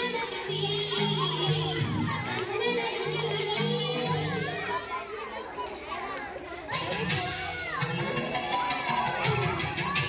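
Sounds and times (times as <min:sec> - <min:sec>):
young children chattering: 0:00.0 - 0:10.0.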